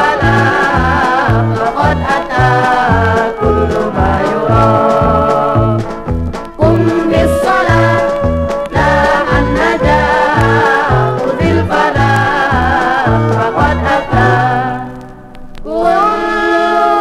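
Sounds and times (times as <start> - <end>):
orchestra music from vinyl: 0.0 - 17.0
steady low drum beat: 0.2 - 13.9.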